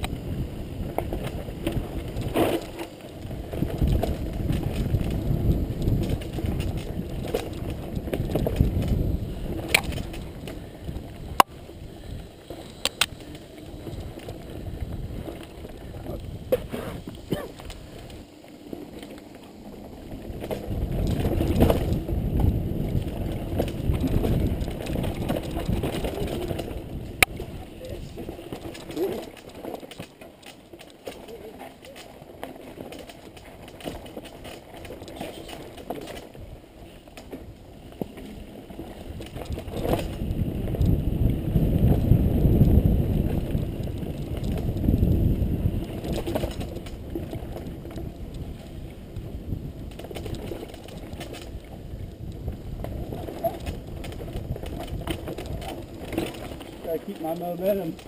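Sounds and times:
bike rattling and knocking: 0.0 - 11.6, 12.2 - 58.0
wind on microphone: 0.0 - 18.3, 19.6 - 29.4, 36.3 - 57.0
bike tyres rolling on dirt: 0.0 - 58.0.

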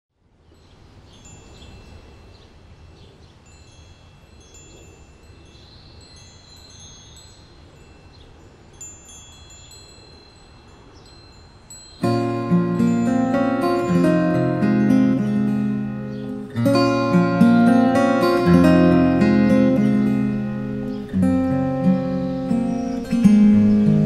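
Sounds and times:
metal wind chimes ringing: 0.5 - 24.0.

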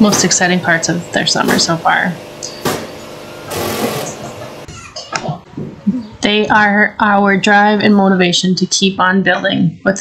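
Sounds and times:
handheld power tool running: 0.7 - 4.7.

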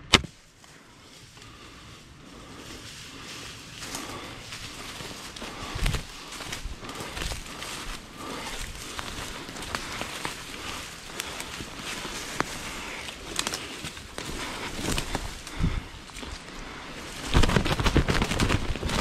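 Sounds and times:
dry leaves crunching and rustling: 2.3 - 19.0
crashing in leaves: 17.1 - 19.0.

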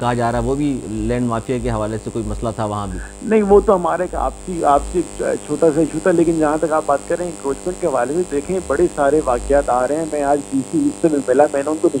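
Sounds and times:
low electrical mains hum: 0.0 - 12.0
person speaking: 0.0 - 12.0.

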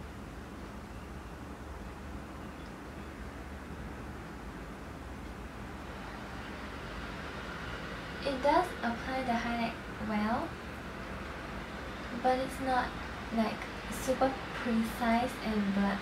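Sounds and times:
background hum and hiss: 0.0 - 16.0.

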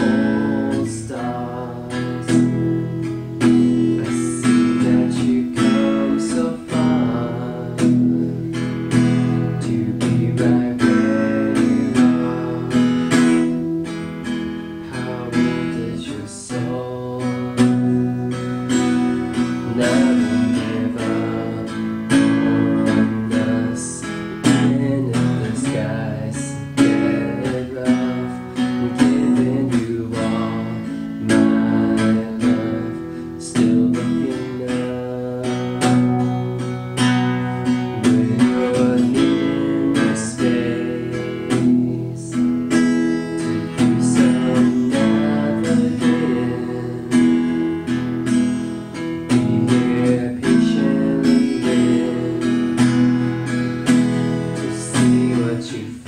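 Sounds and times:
acoustic guitar strumming chords: 0.0 - 56.0.

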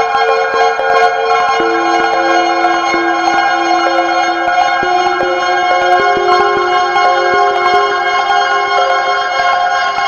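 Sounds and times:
modular synthesizer ambient music: 0.0 - 10.0.

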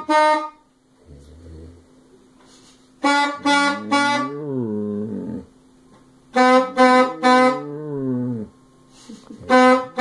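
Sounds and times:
saxophone note: 3.0 - 4.7, 6.3 - 8.4.

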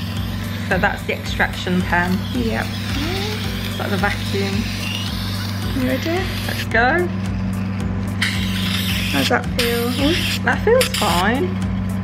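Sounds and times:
vacuum pen motor hum: 0.0 - 12.0
suction hiss: 8.2 - 11.2.

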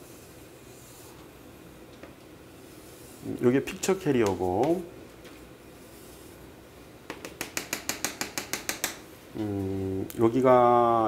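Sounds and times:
chalk tapping on chalkboard: 7.1 - 9.0.

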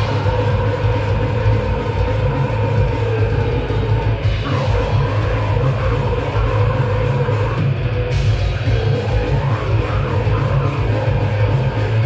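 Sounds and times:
heavy metal band playing: 0.0 - 12.0.

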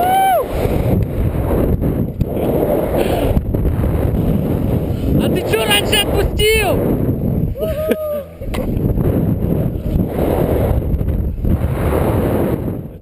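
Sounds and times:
person shouting: 0.0 - 0.5, 5.5 - 6.8, 7.6 - 8.4
person yelling: 0.0 - 0.5, 5.5 - 6.8, 7.6 - 8.4
wind rushing over microphone: 0.0 - 13.0.

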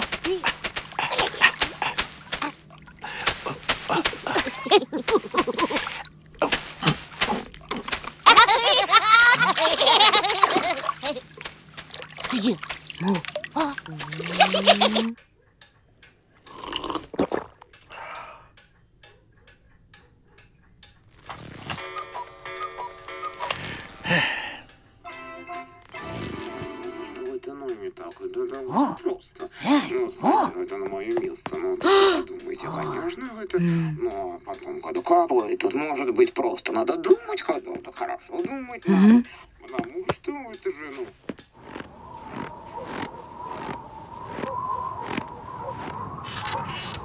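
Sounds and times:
leafy broom slapping on skin: 0.0 - 15.2, 40.9 - 47.0
pendulum clock ticking: 17.7 - 21.1, 21.8 - 23.5, 24.6 - 25.8, 26.8 - 41.6
music with tinkling melody: 24.7 - 25.9.

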